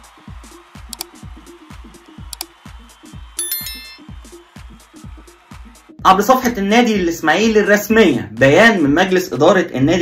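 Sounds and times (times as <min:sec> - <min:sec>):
electronic music with kick drum: 0:00.0 - 0:08.9
notification bell chime: 0:03.4 - 0:04.1.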